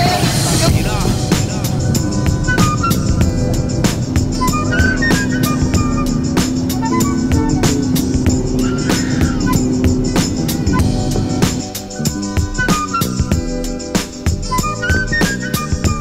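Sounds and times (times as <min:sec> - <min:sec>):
music with steady beat: 0:00.0 - 0:16.0.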